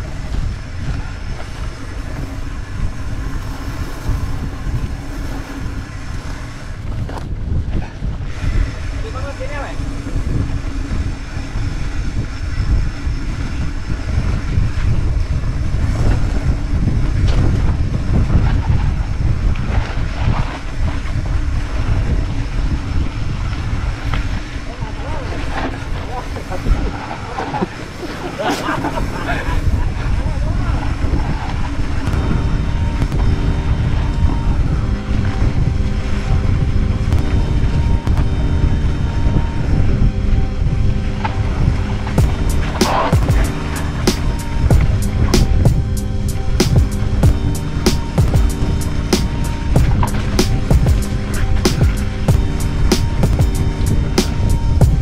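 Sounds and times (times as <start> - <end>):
wind rushing over microphone: 0.0 - 55.0
background music: 32.1 - 55.0.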